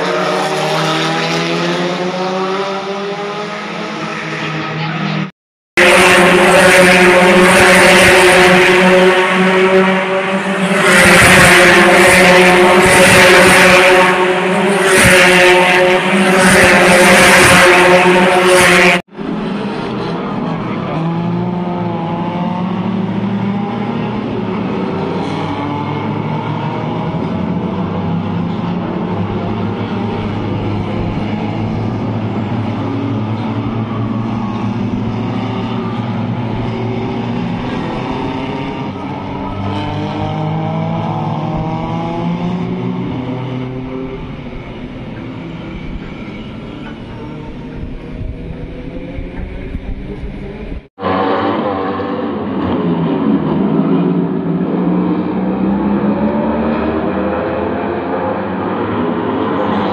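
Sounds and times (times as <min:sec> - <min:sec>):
distant race cars: 0:00.0 - 0:59.9
race cars passing close: 0:00.0 - 0:59.9.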